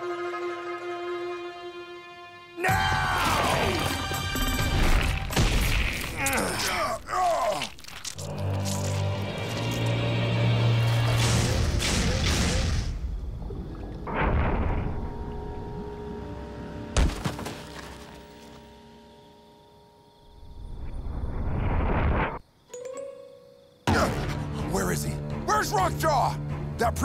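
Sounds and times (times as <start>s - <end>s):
cartoon background music: 22.7s - 27.0s.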